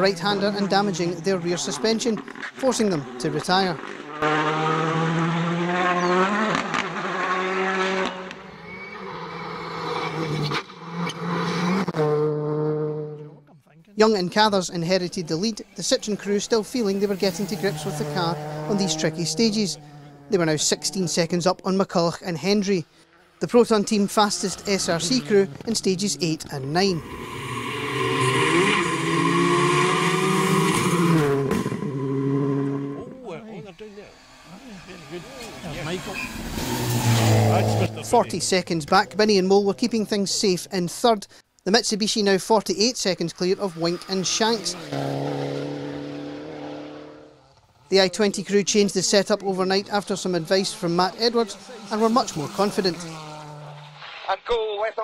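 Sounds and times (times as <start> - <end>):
rally car engines at high revs: 0.0 - 13.4, 14.5 - 22.0, 22.8 - 40.2, 43.1 - 54.3.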